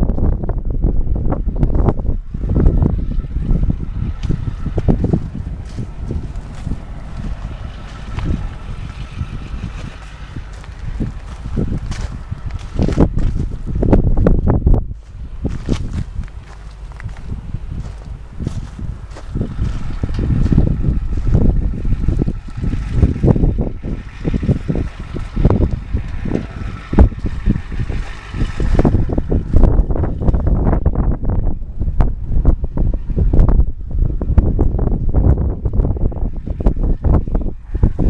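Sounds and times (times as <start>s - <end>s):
wind buffeting microphone: 0.0s - 38.0s.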